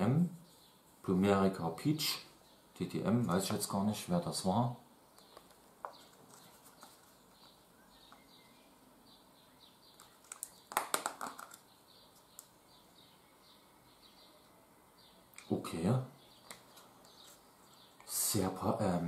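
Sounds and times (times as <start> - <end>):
plastic lid clicks and crackles: 10.0 - 11.6.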